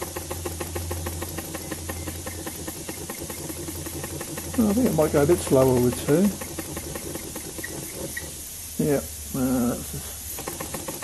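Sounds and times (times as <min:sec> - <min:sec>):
small engine rapid ticking: 0:00.0 - 0:08.8, 0:09.8 - 0:11.0.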